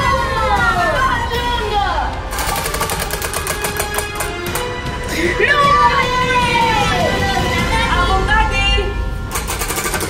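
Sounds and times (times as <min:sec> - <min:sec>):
prize wheel clicking: 0:02.3 - 0:04.7, 0:09.3 - 0:10.0.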